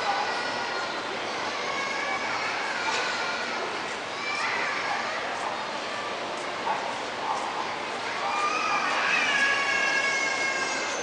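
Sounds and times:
high-pitched voices calling out: 0.0 - 11.0.

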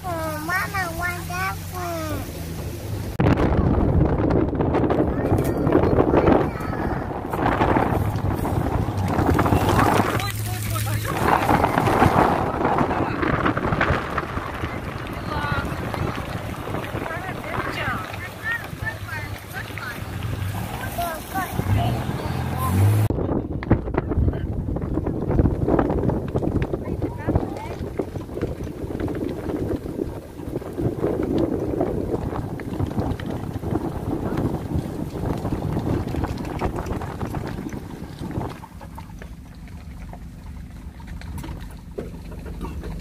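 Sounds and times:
wind buffeting microphone: 0.0 - 43.0
faint voices: 4.8 - 25.3.

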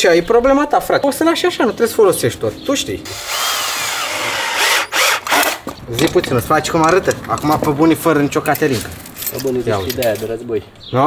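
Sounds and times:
cordless power drill running: 3.1 - 5.7.

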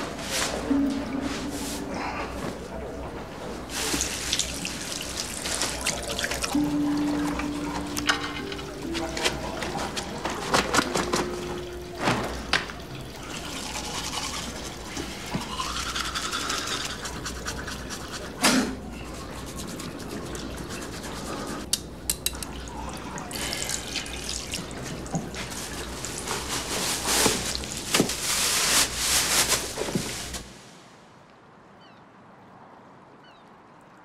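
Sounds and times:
water splashing in washbasin: 3.7 - 30.4
toothbrush scrubbing teeth: 13.4 - 21.7.

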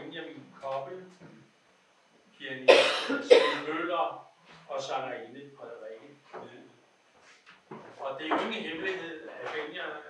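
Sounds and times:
person coughing: 2.7 - 3.7.

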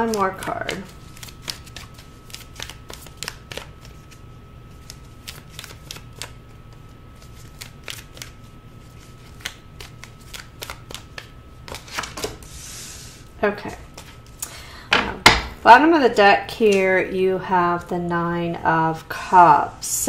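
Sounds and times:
cards being shuffled: 0.0 - 12.5, 13.9 - 14.4.

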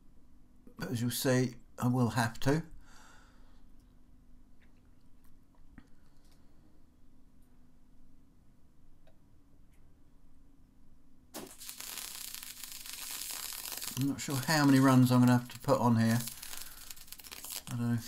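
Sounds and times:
welding arc crackling: 11.4 - 18.0.

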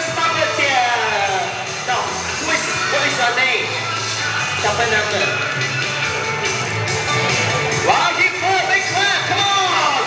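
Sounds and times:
loud music: 0.0 - 10.0.

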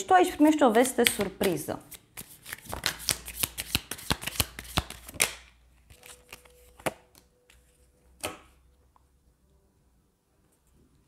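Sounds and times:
cards being shuffled: 0.7 - 7.8.

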